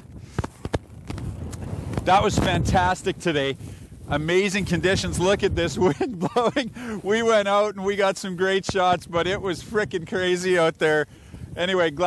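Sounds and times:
blizzard wind buffeting microphone: 0.0 - 12.0.

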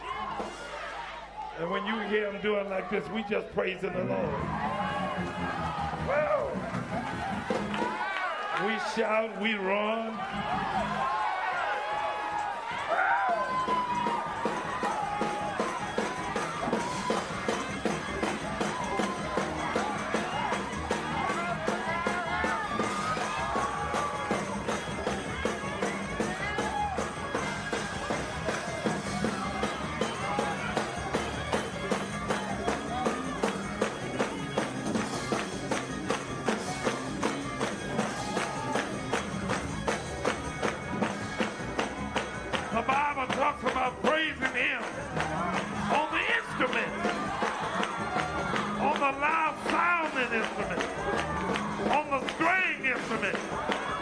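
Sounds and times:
congregation shouting and whooping: 0.0 - 35.5, 42.0 - 54.0
up-tempo gospel music: 0.0 - 54.0
drums and tambourine beat: 4.4 - 54.0
voices singing and shouting: 12.0 - 33.8.

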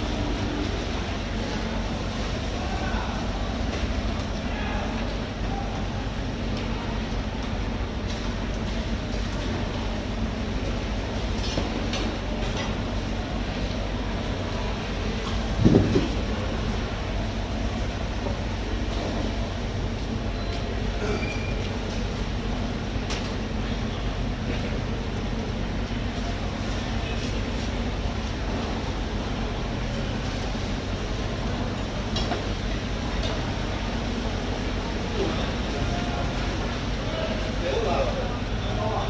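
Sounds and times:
low mechanical rumble: 0.0 - 39.0.

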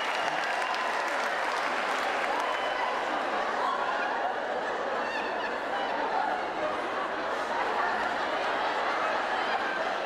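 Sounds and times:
audience applauding and laughing: 0.0 - 10.0.

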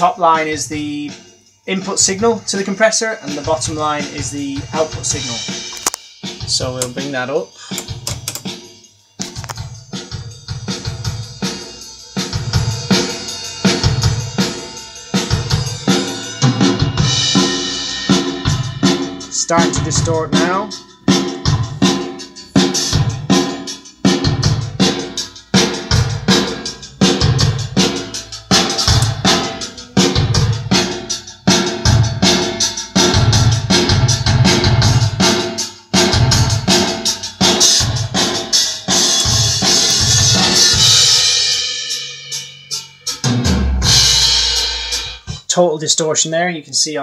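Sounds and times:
distorted drum kit: 0.0 - 46.0.

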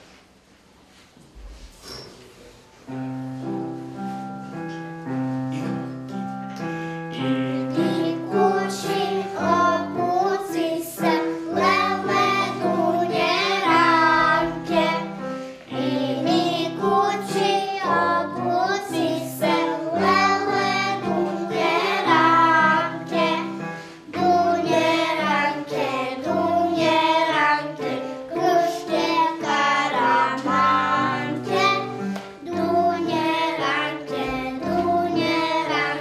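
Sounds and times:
children singing in unison: 7.2 - 36.0.

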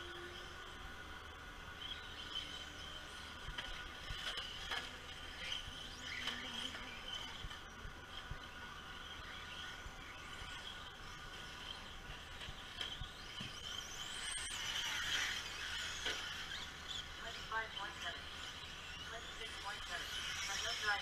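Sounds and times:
high-pitched rc car motor whine: 0.0 - 21.0.

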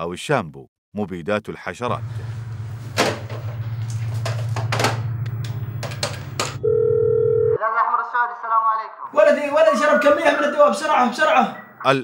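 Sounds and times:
telephone line tone: 6.6 - 7.6.

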